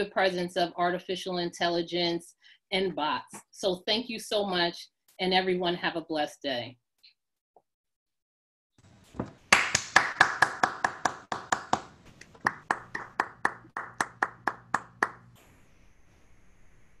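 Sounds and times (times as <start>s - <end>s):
hands clapping: 9.2s - 15.3s.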